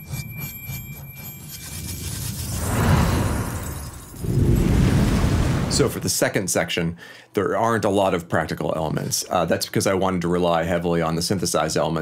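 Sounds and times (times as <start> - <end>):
breath-like whoosh: 2.6 - 5.9.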